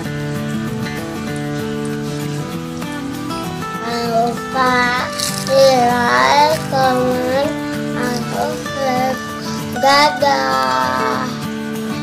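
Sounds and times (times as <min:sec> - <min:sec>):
guitar accompaniment: 0:00.0 - 0:12.0
person singing: 0:03.8 - 0:11.5.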